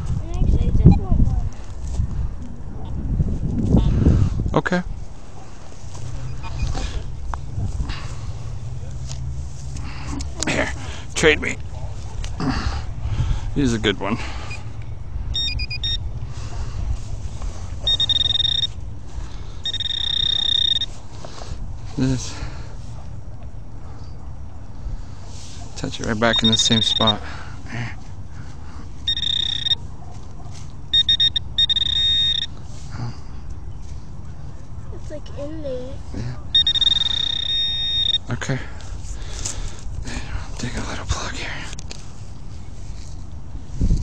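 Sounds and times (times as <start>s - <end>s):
metal detector pinpointer beeping: 6.2s - 6.8s, 15.3s - 16.1s, 17.8s - 18.8s, 19.6s - 21.0s, 26.2s - 27.2s, 29.0s - 29.8s, 30.9s - 32.6s, 36.5s - 38.4s.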